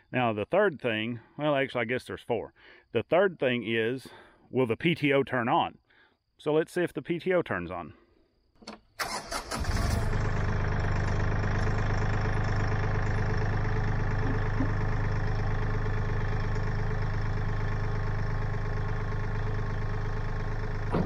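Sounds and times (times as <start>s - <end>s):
tractor engine starting and running: 8.6s - 21.0s.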